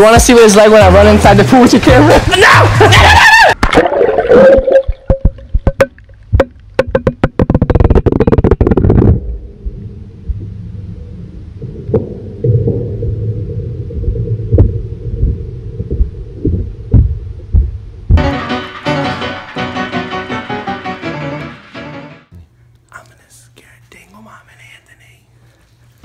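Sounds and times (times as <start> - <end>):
water splashing and bubbling: 3.6 - 17.3
muffled underwater rumble: 7.5 - 18.2.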